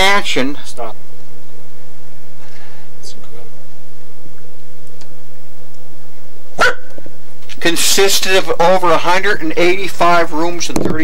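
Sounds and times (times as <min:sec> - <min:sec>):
steady low hum: 0:00.0 - 0:11.0
short sharp yelp: 0:06.6 - 0:06.9.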